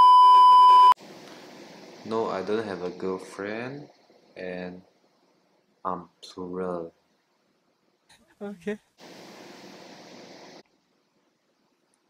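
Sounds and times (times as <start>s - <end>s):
high test-tone beep: 0.0s - 1.0s
faint hiss: 1.0s - 12.0s.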